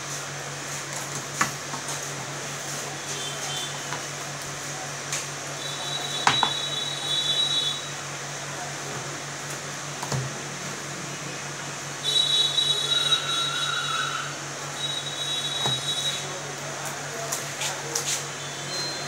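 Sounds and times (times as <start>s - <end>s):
high-pitched whine: 12.1s - 16.3s.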